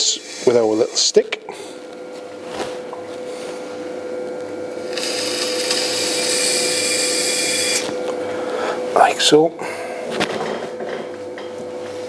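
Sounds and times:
pottery wheel humming: 0.0s - 12.0s.

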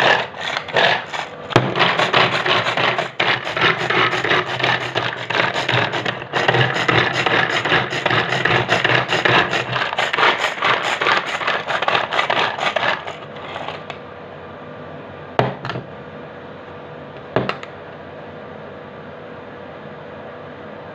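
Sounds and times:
garlic chopper rasping rattle: 0.0s - 14.0s.

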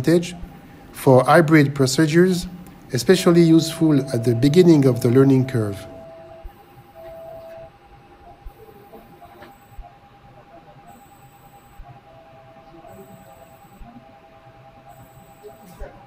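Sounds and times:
intermittent electronic tones: 0.0s - 16.0s
steady electronic tone: 3.0s - 16.0s.

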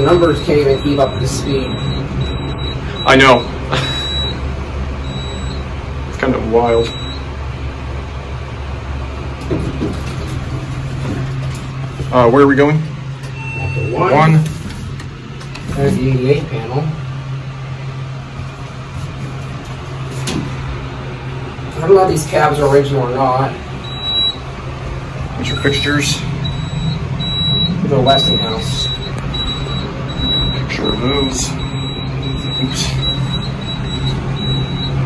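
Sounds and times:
elevator car rumbling: 0.0s - 35.0s.

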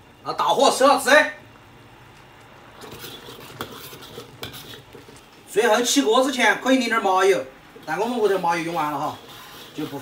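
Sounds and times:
metal ladle scraping a wok: 2.8s - 5.3s, 7.8s - 10.0s.

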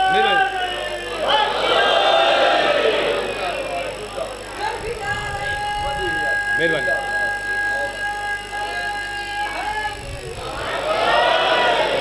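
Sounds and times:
man's voice over public address: 0.0s - 1.2s, 5.1s - 8.8s
steady high-pitched tone: 0.0s - 12.0s.

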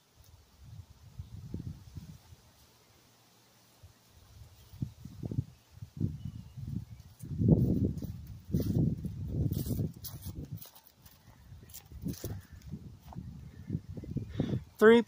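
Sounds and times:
footsteps on dry leaves: 7.0s - 13.3s.

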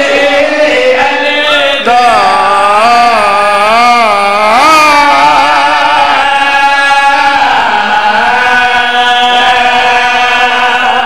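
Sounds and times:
man singing chant-like phrase: 0.0s - 11.0s.

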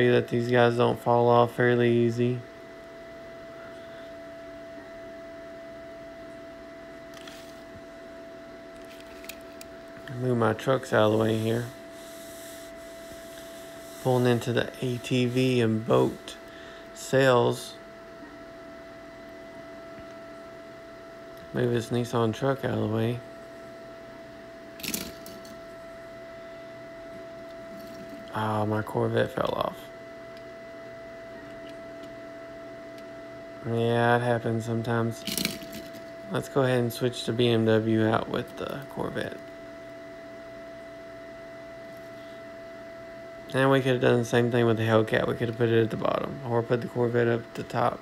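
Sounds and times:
room hum and hiss: 0.0s - 48.0s.

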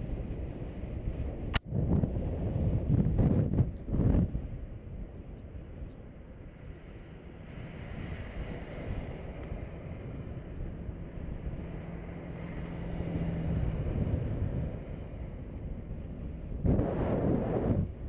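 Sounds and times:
low hum: 0.0s - 18.0s
wind rushing over microphone: 0.0s - 18.0s.

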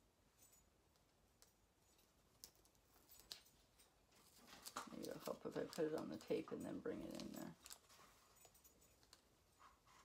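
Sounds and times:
paper ticks and rustles: 1.9s - 10.0s.

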